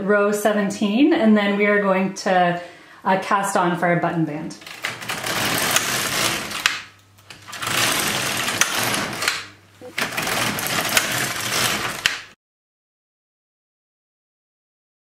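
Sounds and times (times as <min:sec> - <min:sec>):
knitting machine carriage sliding: 0:04.6 - 0:12.4.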